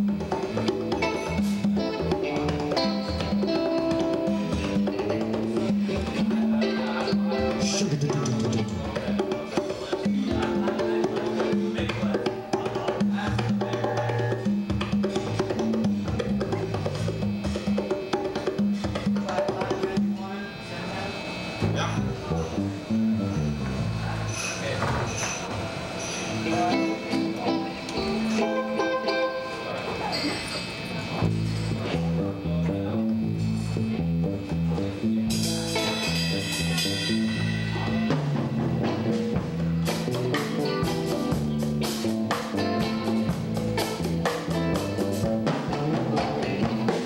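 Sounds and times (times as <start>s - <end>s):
drum kit: 0.0s - 20.3s, 26.3s - 29.4s, 31.2s - 47.0s
congas: 0.0s - 20.6s, 21.3s - 47.0s
electric bass line: 0.0s - 20.6s, 21.5s - 24.3s, 26.3s - 29.5s, 31.1s - 47.0s
electric guitar: 0.0s - 47.0s.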